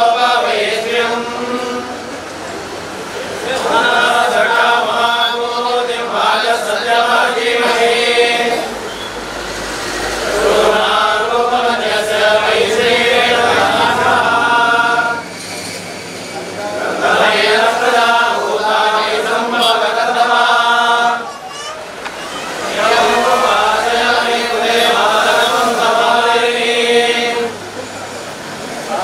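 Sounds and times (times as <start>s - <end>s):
priests chanting: 0.0s - 15.4s, 16.5s - 28.0s.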